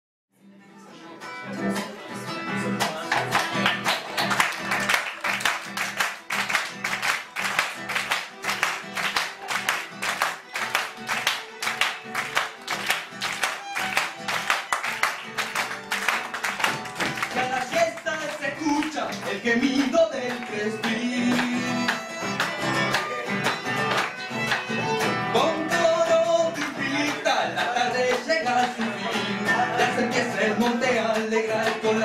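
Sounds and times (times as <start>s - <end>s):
acoustic guitar strumming: 0.9s - 32.0s
audience hand claps: 2.8s - 25.2s, 26.1s - 29.2s
violin: 5.7s - 17.6s, 20.1s - 26.9s.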